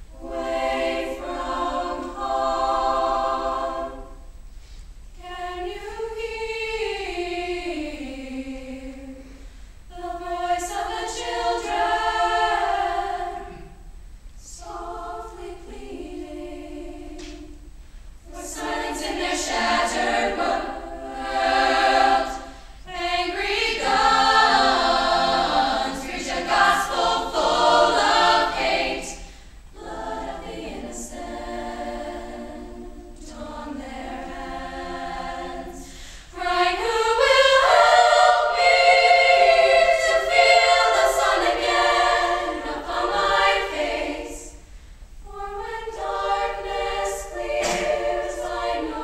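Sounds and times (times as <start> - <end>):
girls choir singing: 0.0 - 4.4, 5.1 - 49.0.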